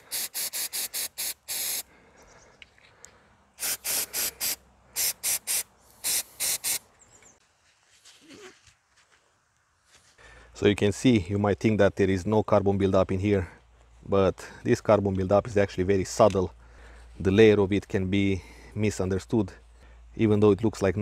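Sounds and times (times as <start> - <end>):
aerosol spray hissing bursts: 0.0 - 1.9, 3.6 - 6.8.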